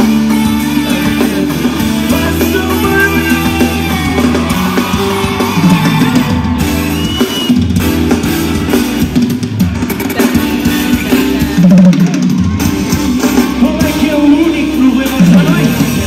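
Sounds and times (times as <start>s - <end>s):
deep bass: 0.0s - 16.0s
drum kit beat: 0.0s - 16.0s
live pop concert music: 0.0s - 16.0s.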